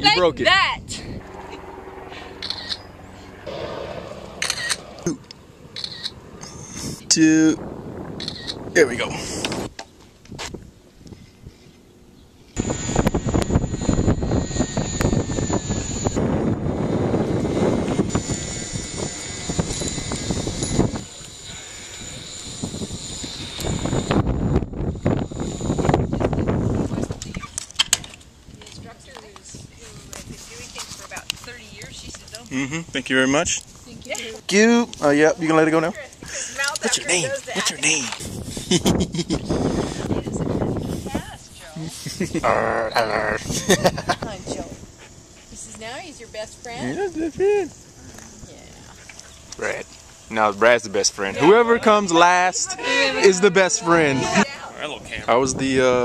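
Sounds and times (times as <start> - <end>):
camera shutter clicks: 2.4 - 2.8, 4.4 - 4.8, 5.8 - 6.2, 8.2 - 8.6.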